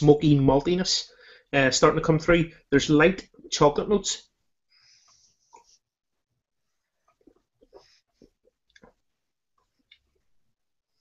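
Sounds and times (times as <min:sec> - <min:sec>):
person sipping and swallowing: 0:07.0 - 0:10.3.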